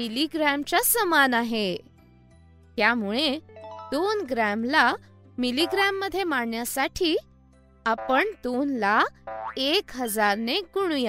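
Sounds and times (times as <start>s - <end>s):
soft background music: 0.0s - 11.0s
person narrating: 5.4s - 6.6s, 7.9s - 8.9s.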